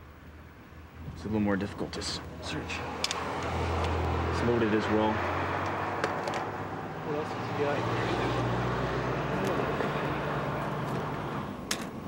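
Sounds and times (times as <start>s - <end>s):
vehicle and street noise: 0.0s - 12.0s.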